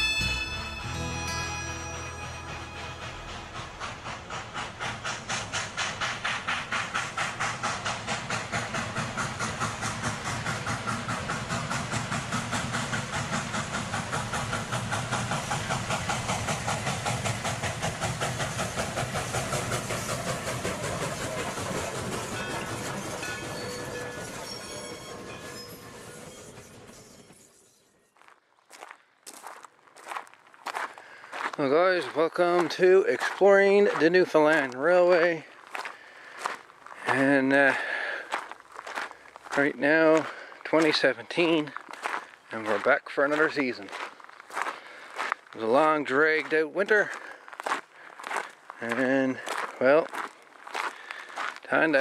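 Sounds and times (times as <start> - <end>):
train wheels clicking on rails: 2.2 - 52.0.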